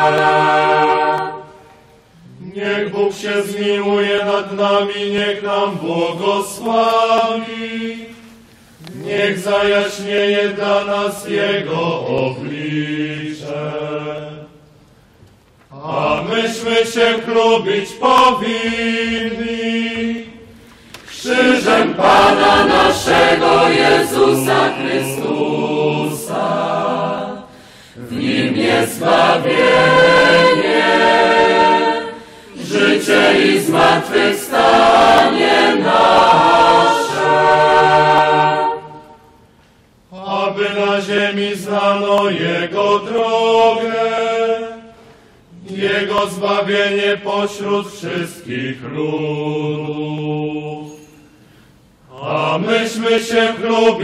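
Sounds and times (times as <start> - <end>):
voices singing liturgical chant: 0.0 - 14.8, 15.7 - 39.5, 40.1 - 54.0.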